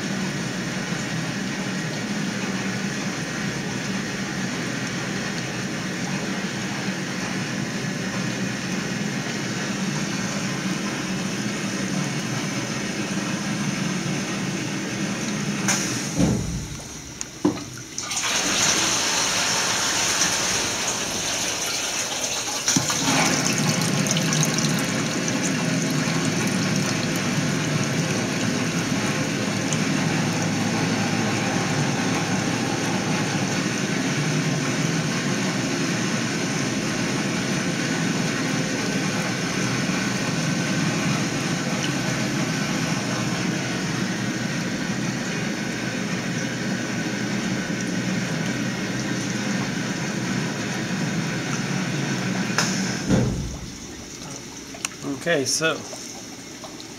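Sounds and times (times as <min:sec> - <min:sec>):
water churning in rinse tank: 0:00.0 - 0:56.9.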